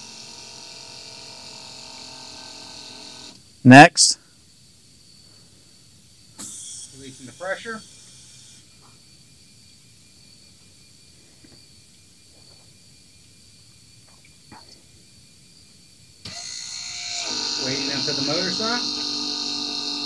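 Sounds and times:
pump motor electric whine: 0:00.0 - 0:03.5, 0:06.4 - 0:09.0, 0:16.2 - 0:20.0.

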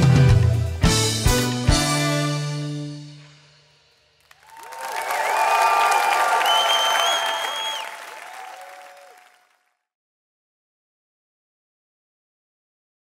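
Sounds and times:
audience applauding and cheering: 0:04.3 - 0:09.6.

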